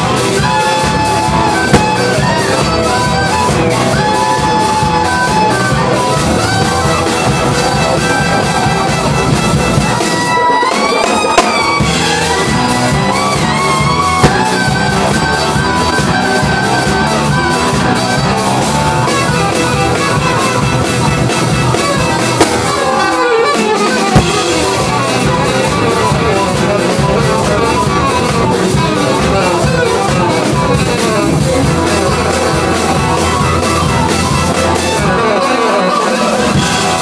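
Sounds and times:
jazz band playing: 0.0 - 37.0
saxophone and trumpet horns: 0.0 - 37.0
steady drum beat: 0.0 - 37.0.

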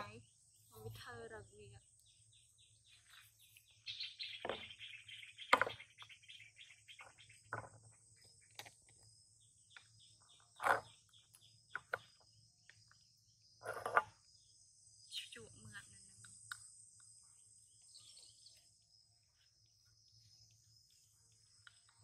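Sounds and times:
bird chirping: 0.0 - 22.0
insects buzzing: 0.0 - 22.0.

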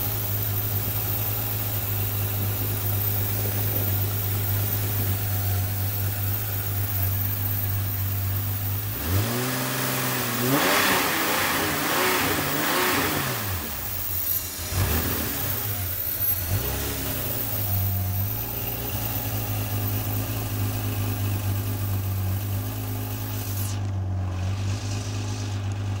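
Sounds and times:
car engine revving and idling: 0.0 - 26.0.

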